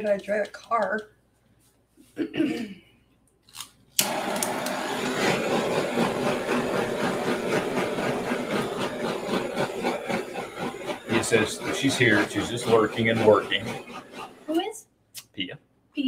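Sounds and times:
torch flame hissing: 4.0 - 14.8.

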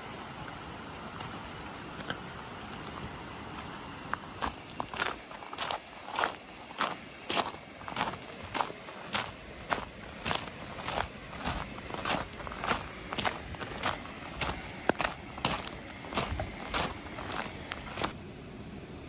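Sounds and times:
insects buzzing: 0.0 - 19.0
footsteps crunching on gravel: 0.4 - 18.2.

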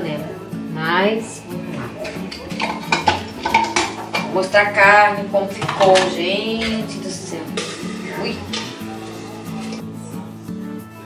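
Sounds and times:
metal cookware clattering in sink: 1.5 - 9.8.

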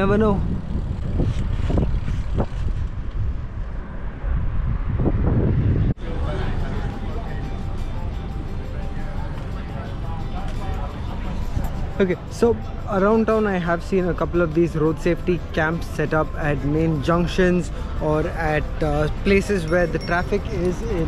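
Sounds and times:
wind on microphone: 0.0 - 6.0
road noise: 0.0 - 21.0
traffic rumble: 0.0 - 21.0
faint music: 6.0 - 21.0
voices: 6.0 - 21.0.

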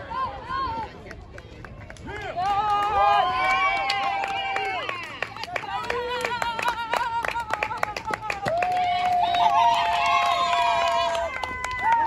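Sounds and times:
girls and women cheering: 2.4 - 7.2, 8.4 - 12.0
hand clapping: 3.8 - 10.3.

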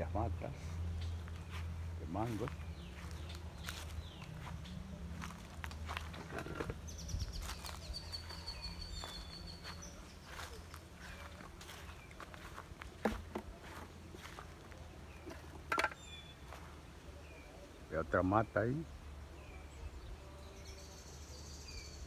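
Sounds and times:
footsteps through grass: 0.4 - 17.6.

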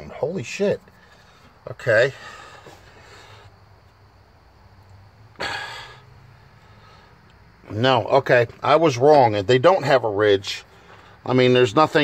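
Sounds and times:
man exhaling breathily: 2.1 - 3.6, 5.4 - 7.2.

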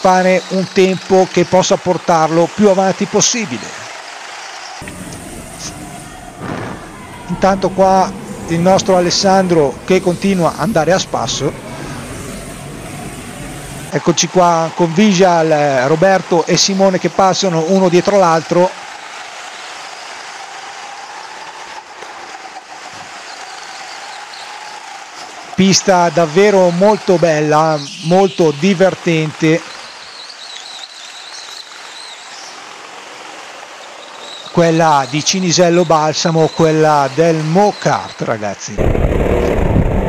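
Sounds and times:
go-kart engines humming: 0.0 - 38.1
faint steady whine: 4.8 - 14.0.

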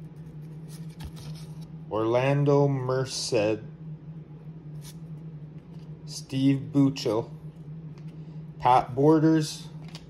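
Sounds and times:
steady low hum: 0.0 - 10.0
cards rustling: 0.2 - 1.7.

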